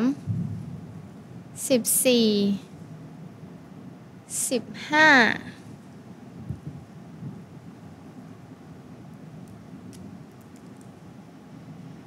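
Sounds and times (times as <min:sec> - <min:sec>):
low studio rumble: 0:00.0 - 0:12.0.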